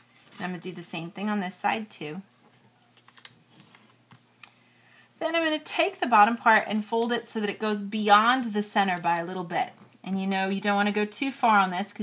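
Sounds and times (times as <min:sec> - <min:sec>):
paper being folded: 0:02.3 - 0:04.3.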